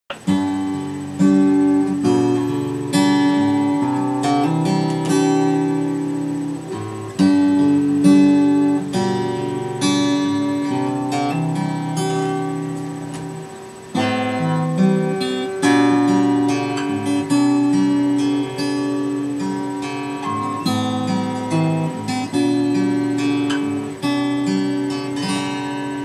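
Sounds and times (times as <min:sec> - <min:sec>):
acoustic guitar chords: 0:00.1 - 0:26.0.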